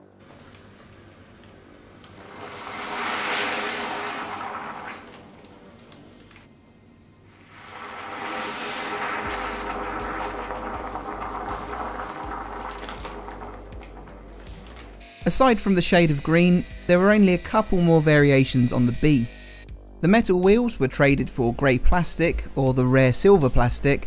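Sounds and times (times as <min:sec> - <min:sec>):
quiet background music: 0:00.0 - 0:24.0
caustic solution fizzing and frothing: 0:00.1 - 0:06.5, 0:07.3 - 0:15.0.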